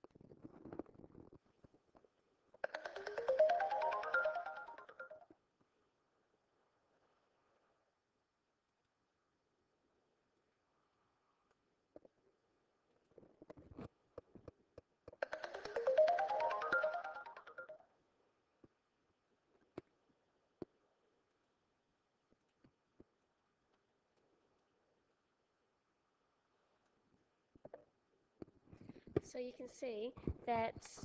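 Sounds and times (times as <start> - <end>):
rapid sparkly ticking: 2.6 - 5.2, 15.2 - 17.8
electronic reward jingle: 2.7 - 5.2, 15.2 - 17.8
rising chime sound effect: 2.7 - 5.2, 15.4 - 17.8.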